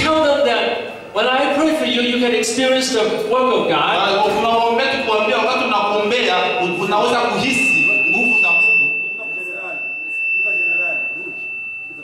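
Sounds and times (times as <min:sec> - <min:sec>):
high-pitched feedback ringing: 0:00.0 - 0:12.0.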